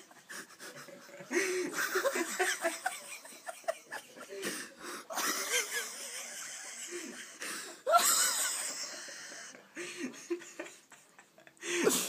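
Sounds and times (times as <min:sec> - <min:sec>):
wheezing human laughter: 0:00.0 - 0:12.0.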